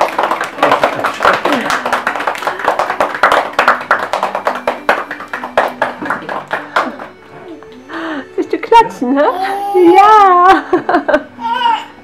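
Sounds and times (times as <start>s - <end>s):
people clapping: 0.0s - 7.9s.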